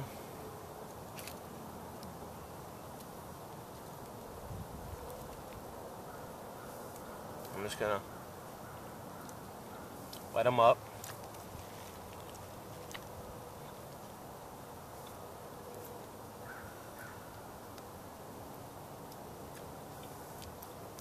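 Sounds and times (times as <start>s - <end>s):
outdoor background noise: 0.0s - 21.0s.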